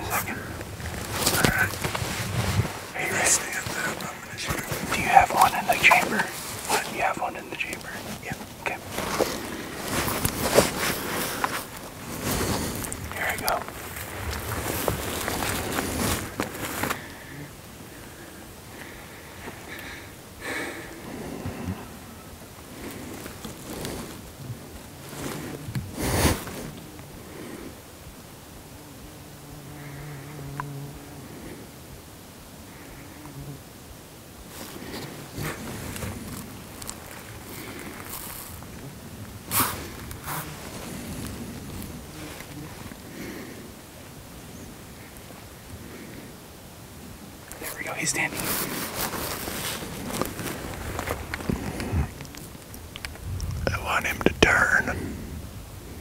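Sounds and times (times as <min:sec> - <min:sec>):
rustling and handling noise: 0:00.0 - 0:17.3, 0:22.7 - 0:26.9, 0:34.4 - 0:43.6, 0:47.4 - 0:54.9.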